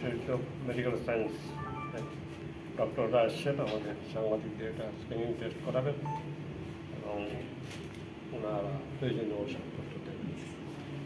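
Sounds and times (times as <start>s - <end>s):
short electronic beep: 1.5s - 2.3s, 6.1s - 6.3s.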